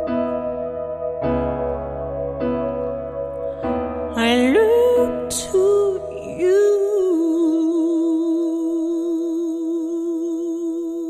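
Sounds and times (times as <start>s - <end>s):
sustained accompanying chord: 0.0s - 11.0s
woman singing long note: 4.2s - 11.0s.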